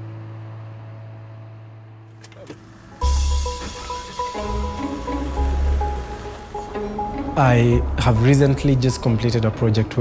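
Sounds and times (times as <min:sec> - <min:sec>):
background music chord: 0:02.9 - 0:09.8.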